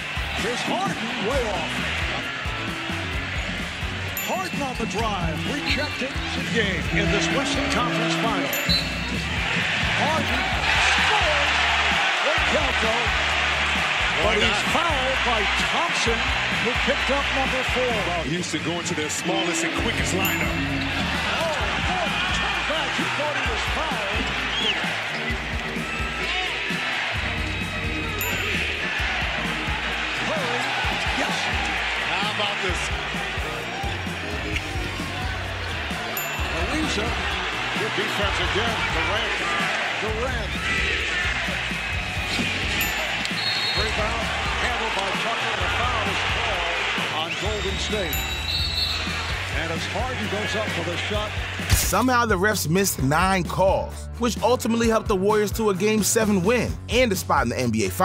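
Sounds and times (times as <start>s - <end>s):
arena crowd noise: 0.0s - 58.0s
background music bass: 0.0s - 58.0s
sneakers squeaking: 8.5s - 9.8s, 24.5s - 26.0s, 42.3s - 44.0s, 47.3s - 49.3s.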